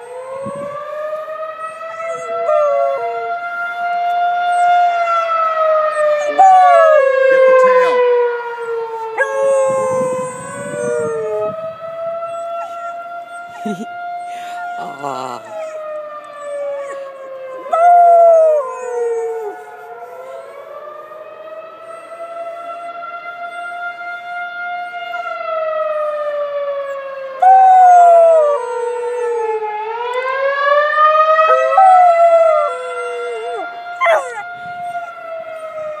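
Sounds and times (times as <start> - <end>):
puppy howling: 0.0 - 20.6, 26.9 - 30.3, 31.2 - 36.0
emergency sirens wailing: 0.0 - 36.0.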